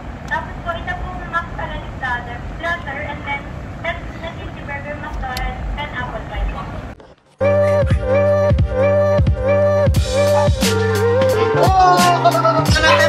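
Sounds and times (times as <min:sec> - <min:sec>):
car cabin rumble: 0:00.0 - 0:07.0
children talking: 0:11.3 - 0:13.0.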